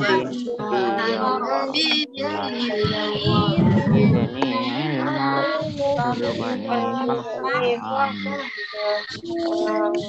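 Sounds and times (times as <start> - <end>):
children singing: 0.0 - 10.0.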